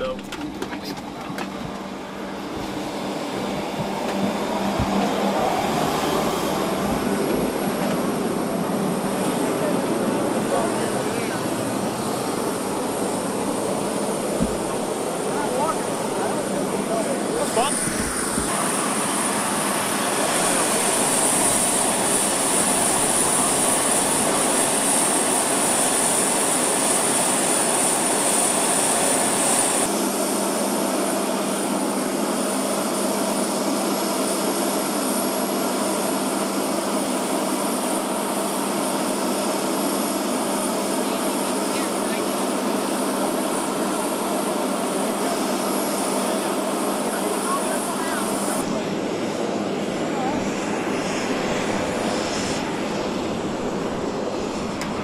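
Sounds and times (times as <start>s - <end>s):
jet turbine whine and roar: 0.0s - 55.0s.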